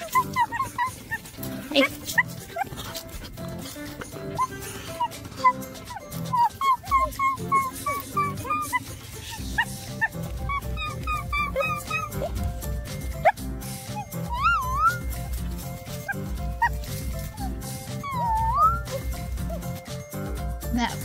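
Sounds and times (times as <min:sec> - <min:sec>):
fox whining chirping calls: 0:00.0 - 0:20.0
background music: 0:00.0 - 0:21.0.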